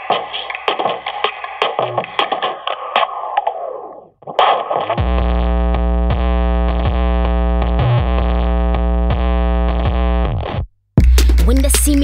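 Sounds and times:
record scratching: 0.0 - 10.6
sharp beat hits: 11.0 - 12.0.

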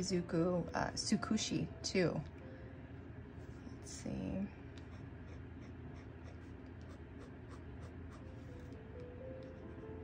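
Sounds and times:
dip pen scratching on paper: 4.8 - 8.6.

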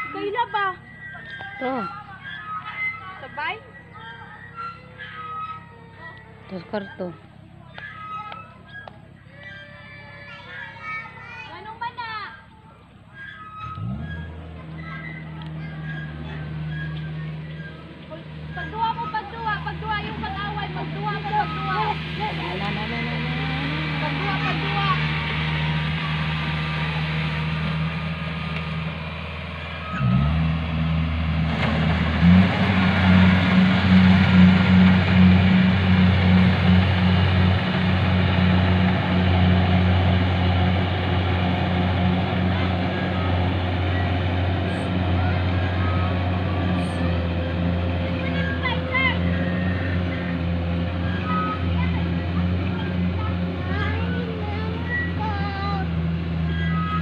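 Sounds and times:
combine harvester diesel engine: 0.0 - 9.8, 10.5 - 57.0
faint wavering high sounds: 0.0 - 11.3.

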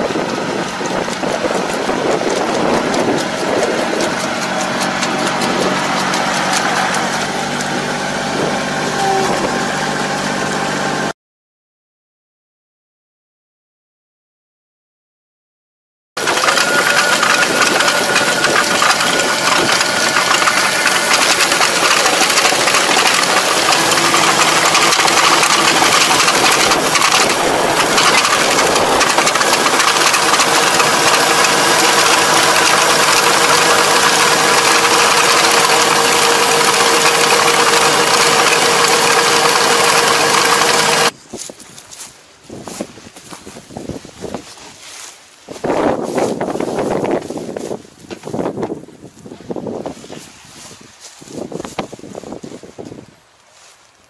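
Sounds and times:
wind on microphone: 0.0 - 4.5, 7.7 - 9.8, 26.3 - 29.8, 41.1 - 44.8, 45.5 - 53.2
tractor engine drone: 0.0 - 11.1, 16.2 - 41.2.

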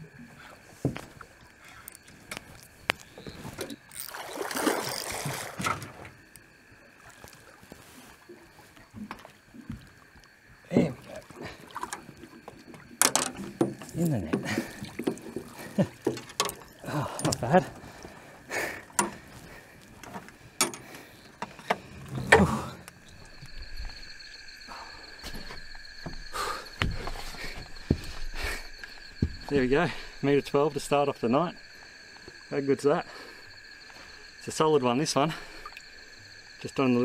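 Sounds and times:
night insects chirring: 0.0 - 37.0
fish splashing in net: 4.0 - 5.6.

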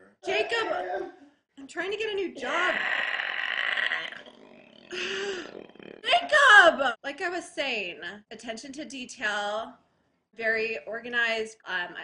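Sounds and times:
man growling: 2.7 - 6.1.

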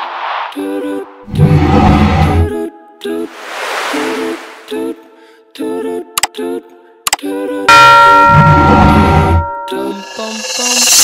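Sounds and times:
bell-like chime: 7.7 - 11.0
music jingle notes: 7.7 - 11.0.

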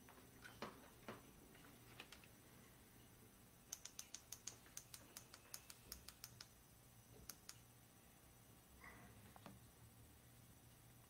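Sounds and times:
faint laptop keyboard typing: 1.8 - 2.4, 3.7 - 6.6, 7.2 - 7.6.

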